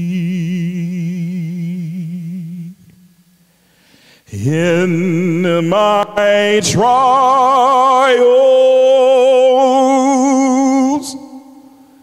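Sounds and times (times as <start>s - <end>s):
man singing with vibrato: 0.0s - 3.3s, 4.2s - 12.0s.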